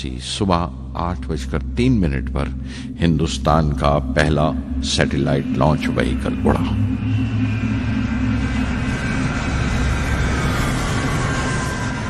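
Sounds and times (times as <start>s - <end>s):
low steady drone: 0.0s - 12.0s.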